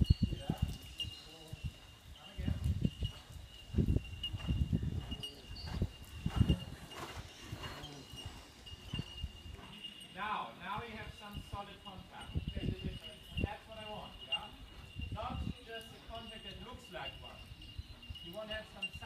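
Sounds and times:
horse hoofbeats on sand: 0.0s - 10.2s.

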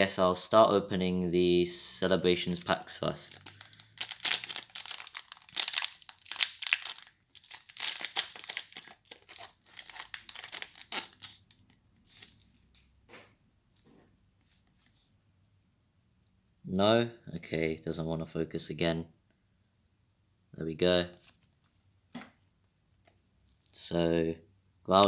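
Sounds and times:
foil wrapper tearing and crinkling: 3.3s - 12.3s.

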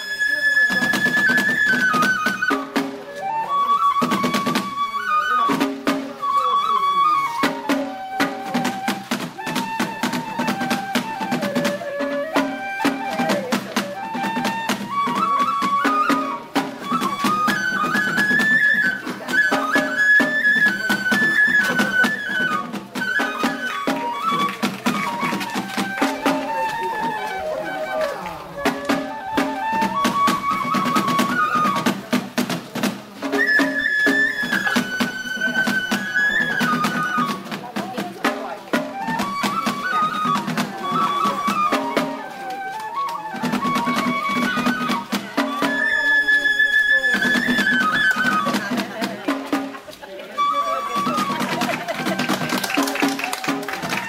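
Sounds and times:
high bamboo flute melody: 0.0s - 54.0s.

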